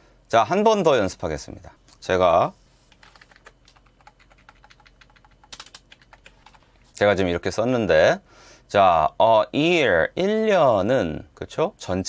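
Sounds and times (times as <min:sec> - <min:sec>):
keyboard and mouse clicking: 0:02.9 - 0:06.8.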